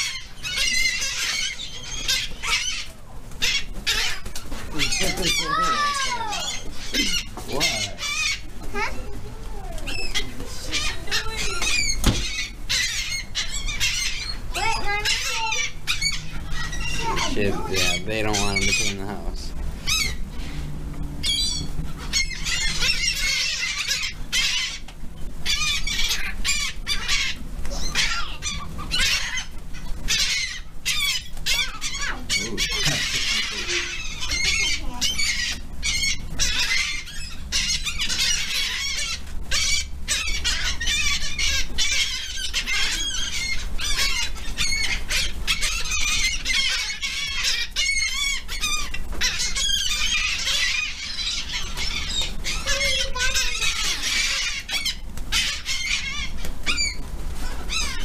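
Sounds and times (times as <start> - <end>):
seagulls squawking: 0.0 - 58.0.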